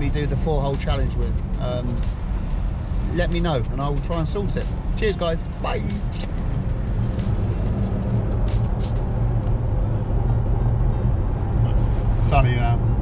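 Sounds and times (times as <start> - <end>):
low car engine rumble: 0.0 - 13.0.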